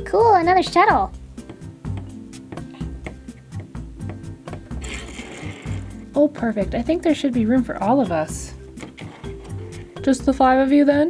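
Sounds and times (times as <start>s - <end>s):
background music: 0.0s - 11.0s
plastic toy pieces scraping: 4.8s - 6.0s, 8.8s - 10.0s.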